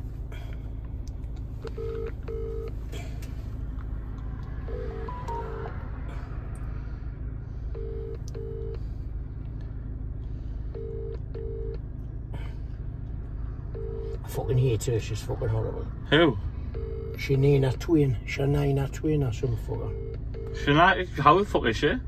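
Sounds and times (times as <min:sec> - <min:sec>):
car cabin rumble: 0:00.0 - 0:21.8
phone ringback tone: 0:04.7 - 0:05.7.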